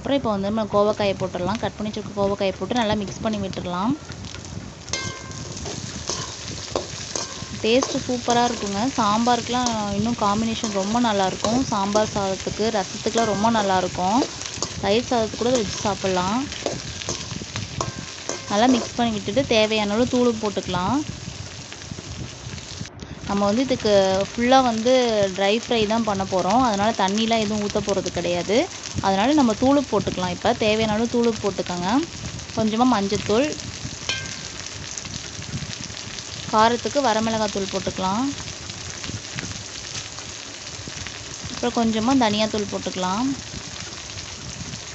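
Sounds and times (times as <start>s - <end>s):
vegetables sizzling in hot oil: 0.0s - 44.9s.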